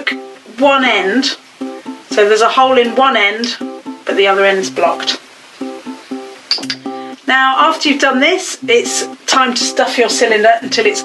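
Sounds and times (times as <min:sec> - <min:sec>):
plucked string instrument: 0:00.0 - 0:11.0.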